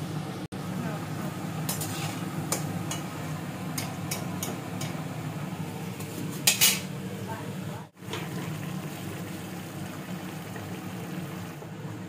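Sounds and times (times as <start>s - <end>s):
curry simmering hiss: 0.6s - 12.0s
metal cookware clattering: 1.7s - 3.1s, 6.0s - 6.9s.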